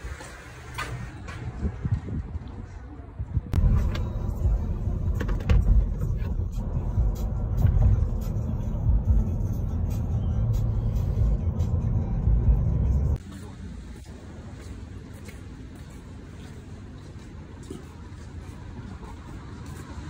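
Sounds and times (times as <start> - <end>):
road and wind noise in car: 0.0 - 20.0.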